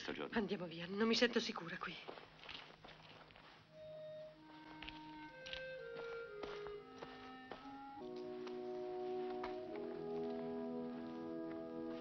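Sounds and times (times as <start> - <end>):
faint footsteps: 1.6 - 12.0.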